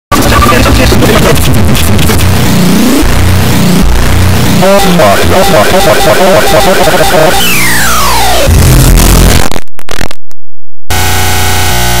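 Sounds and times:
chopped-up sound stutter: 0.1s - 10.3s
distorted electronic buzz: 0.1s - 10.3s, 10.9s - 12.0s.

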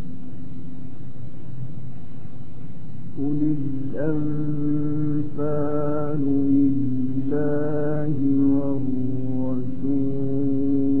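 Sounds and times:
man chanting melodic recitation: 3.2s - 11.0s.

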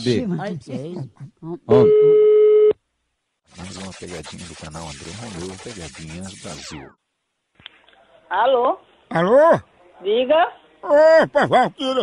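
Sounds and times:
telephone ringing tone beep: 1.8s - 2.7s.

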